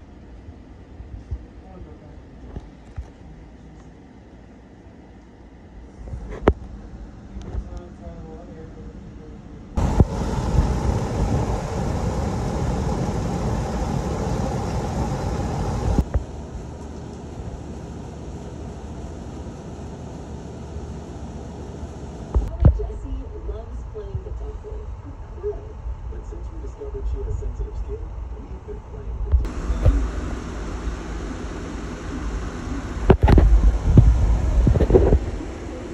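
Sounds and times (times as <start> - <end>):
ceiling fan whirring: 0.0 - 35.9
floor fan air rushing: 0.0 - 35.9
fan clicks: 15.8 - 18.4.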